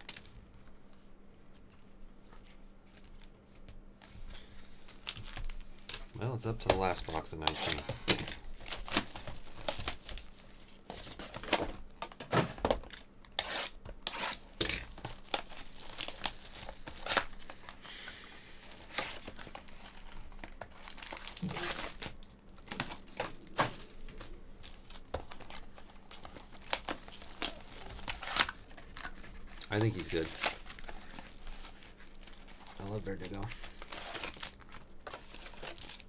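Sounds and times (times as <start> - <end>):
plastic shrink-wrap tearing and crinkling: 0.0 - 0.4, 4.6 - 11.6, 12.9 - 17.8, 18.6 - 36.0.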